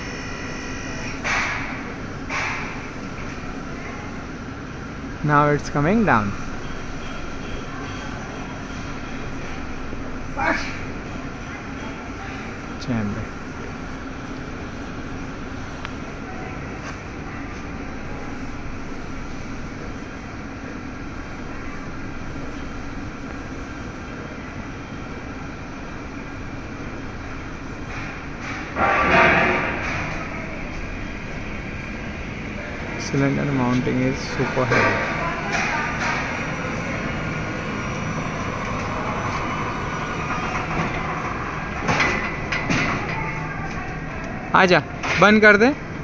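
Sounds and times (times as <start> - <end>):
scissor lift hum: 0.0 - 46.0
hydraulic rushing burst: 26.4 - 45.0.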